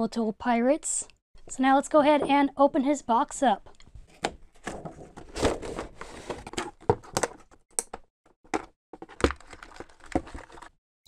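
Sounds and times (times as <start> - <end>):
cardboard and plastic packaging crinkling: 9.0 - 10.8.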